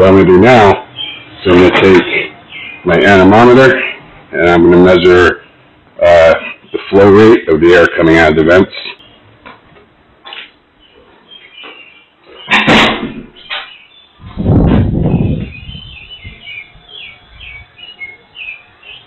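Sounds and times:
low rumbling air noise: 0.0s - 19.0s.

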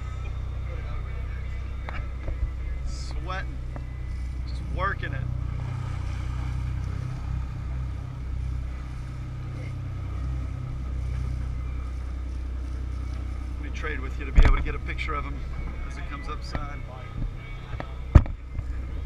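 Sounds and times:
boat engine droning: 0.0s - 19.0s
voices: 0.0s - 19.0s.

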